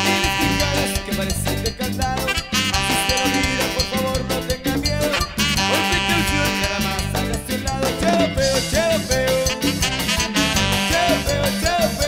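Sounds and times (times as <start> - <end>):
accordion melody: 0.0 - 12.0
bass line: 0.0 - 12.0
cumbia percussion beat: 0.0 - 12.0.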